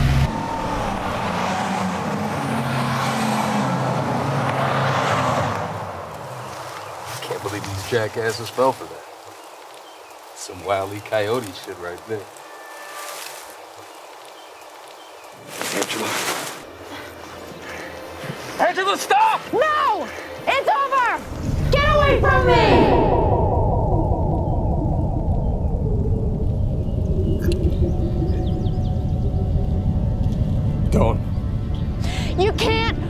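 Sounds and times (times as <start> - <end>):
outdoor ambience hiss: 0.0 - 32.9
swirl of falling tones: 21.2 - 31.7
deep steady rumble: 21.2 - 33.0.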